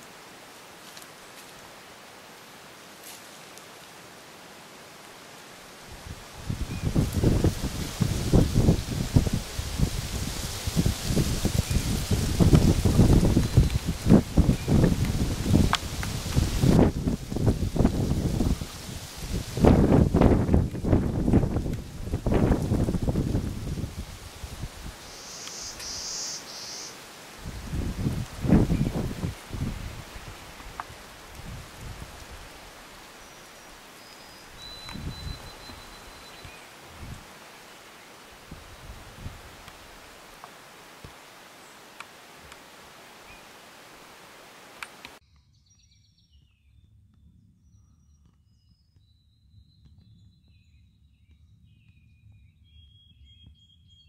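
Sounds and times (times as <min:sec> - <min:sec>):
rustling and rumbling noise: 0:05.9 - 0:25.0.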